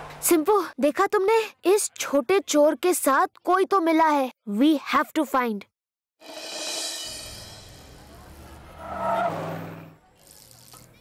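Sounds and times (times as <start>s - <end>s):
cartoon car driving past: 7.3s - 10.1s
tyre screech: 7.8s - 10.0s.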